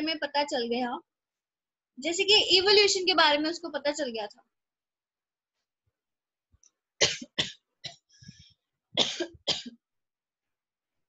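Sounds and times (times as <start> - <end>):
person coughing: 7.0 - 8.1, 9.0 - 9.8.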